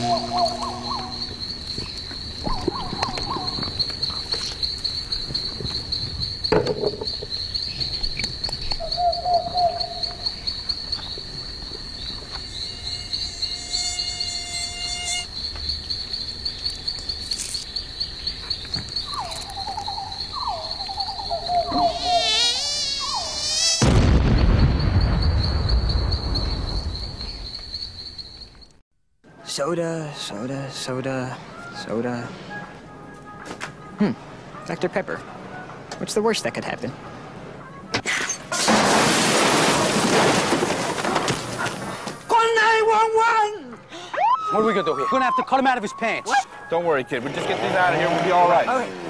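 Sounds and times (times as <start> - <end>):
mosquito whining: 0.0 - 1.8, 12.5 - 15.4, 21.6 - 23.9, 47.1 - 49.0
night insects chirping: 0.0 - 49.0.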